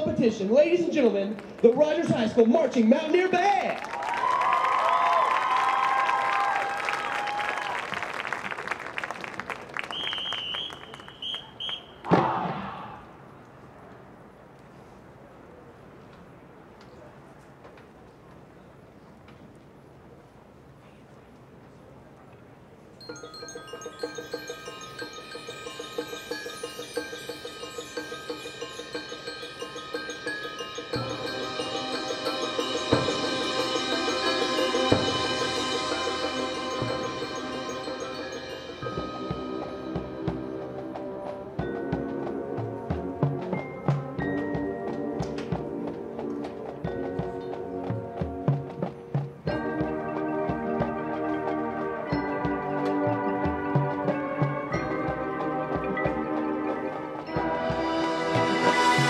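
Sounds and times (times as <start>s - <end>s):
marimba and keyboard percussion: 0.0s - 7.7s, 23.0s - 59.0s
drum strokes: 23.0s - 59.0s
marching band playing: 23.0s - 59.0s.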